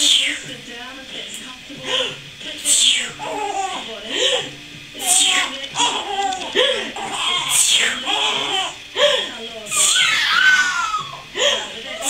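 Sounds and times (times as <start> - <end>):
infant fussing and crying: 2.7 - 8.9, 9.7 - 11.4.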